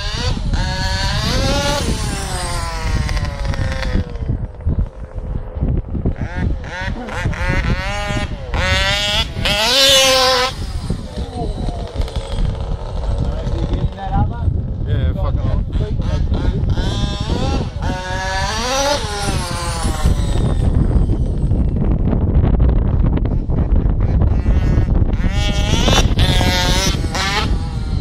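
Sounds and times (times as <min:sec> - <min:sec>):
rc car engine revving: 0:00.0 - 0:14.4, 0:15.3 - 0:28.0.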